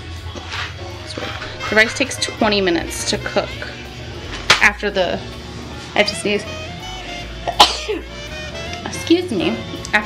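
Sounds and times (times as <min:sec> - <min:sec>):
soft background music: 0:00.0 - 0:10.0
woman coughing: 0:07.5 - 0:08.0.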